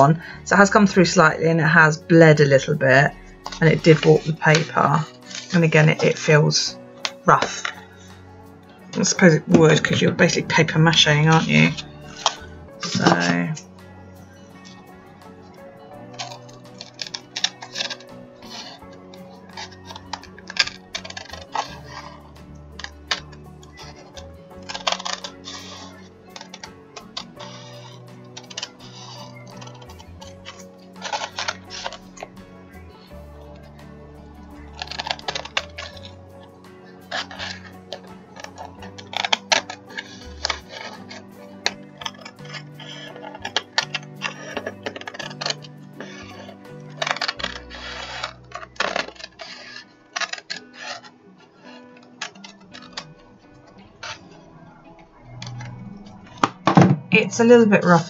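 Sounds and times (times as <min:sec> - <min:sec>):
background music: 0:00.0 - 0:58.0
scissors snipping paper: 0:08.9 - 0:13.6, 0:14.6 - 0:54.4.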